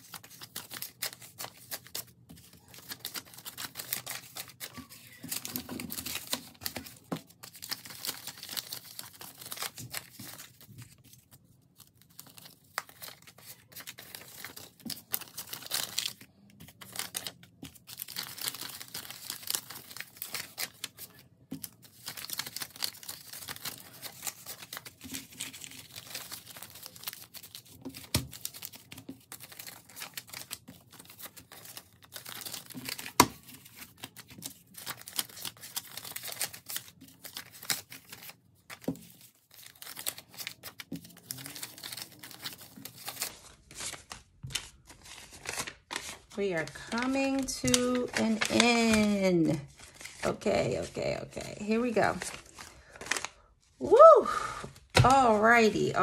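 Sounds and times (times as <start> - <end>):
banknotes crinkling and rustling: 0.0 - 53.8.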